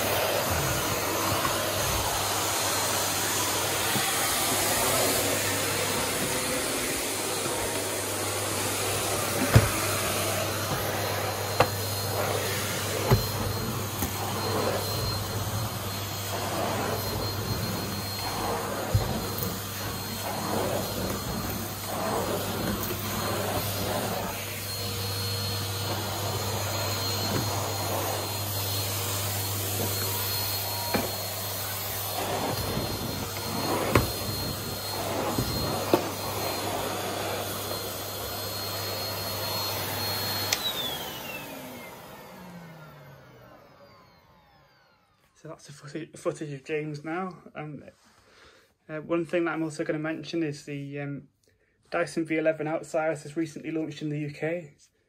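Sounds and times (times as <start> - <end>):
vacuum cleaner running: 0.0 - 45.9.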